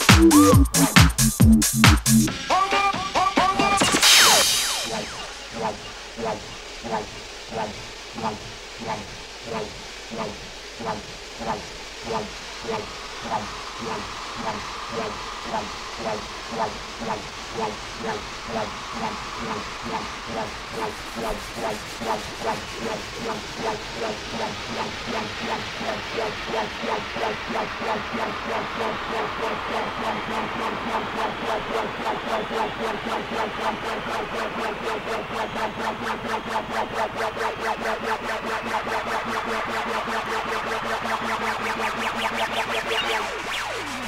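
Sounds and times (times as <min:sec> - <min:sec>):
pulsing synth note: 0:00.0 - 0:02.3, 0:04.0 - 0:44.0
hiss riser: 0:00.0 - 0:44.0.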